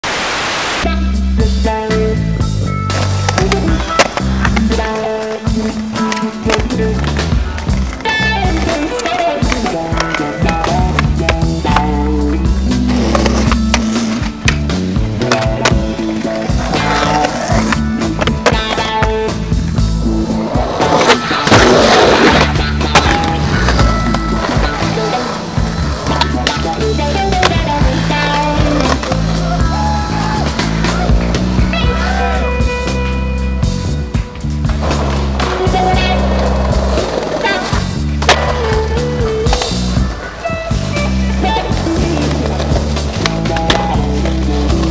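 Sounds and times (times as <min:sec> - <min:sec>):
music playing: 0:00.8 - 0:44.9
skateboard rolling on concrete: 0:01.7 - 0:44.9
skateboard clacking: 0:02.9 - 0:33.0, 0:34.1 - 0:44.9.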